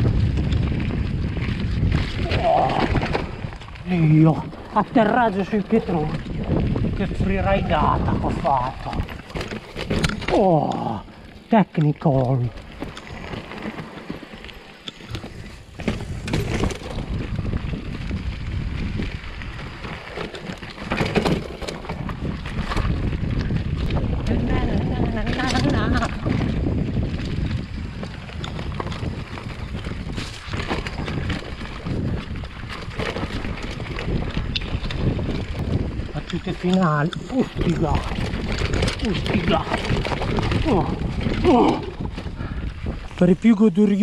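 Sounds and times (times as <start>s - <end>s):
bike rattling and knocking: 0.0s - 44.0s
bike tyres rumbling over dirt: 0.0s - 44.0s.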